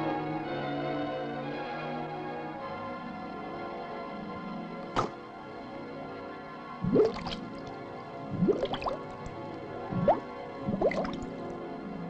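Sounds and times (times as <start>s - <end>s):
bubbly bloop sound effects: 6.8s - 7.7s, 8.3s - 9.2s, 9.9s - 11.4s.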